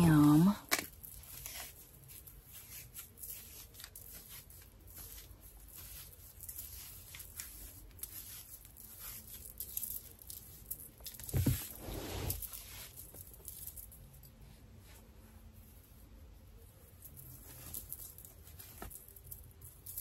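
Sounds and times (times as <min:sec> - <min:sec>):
hair rustling and crackling: 0:00.0 - 0:20.0.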